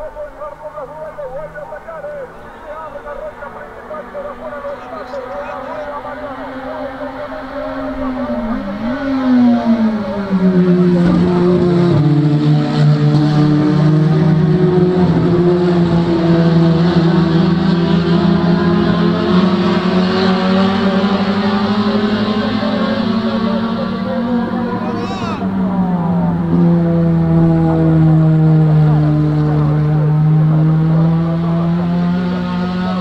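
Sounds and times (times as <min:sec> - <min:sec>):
race car engines at high revs: 0:00.0 - 0:33.0.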